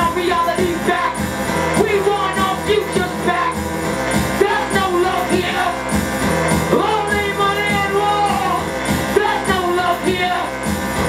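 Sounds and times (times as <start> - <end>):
pulsing beat: 0.0 - 11.0.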